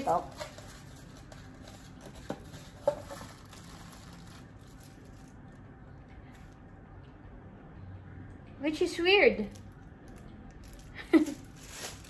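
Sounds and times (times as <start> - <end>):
plastic wrap and foam rustling: 0.0 - 6.6, 9.5 - 12.0.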